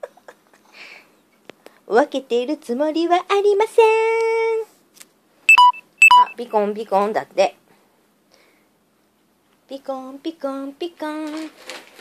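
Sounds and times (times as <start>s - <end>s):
electronic two-tone beep: 5.5s - 6.4s.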